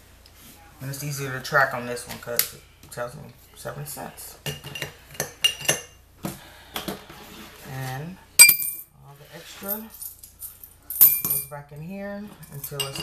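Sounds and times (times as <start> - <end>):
coins clinking against glass: 8.4 - 8.9, 9.7 - 11.5.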